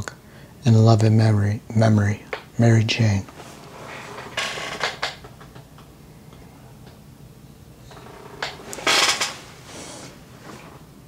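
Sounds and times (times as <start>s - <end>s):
chair creaking: 3.3s - 5.9s, 7.8s - 10.9s.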